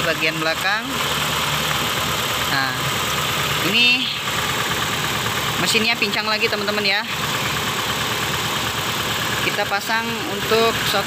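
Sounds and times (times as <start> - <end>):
car engine idling roughly: 0.0 - 11.0.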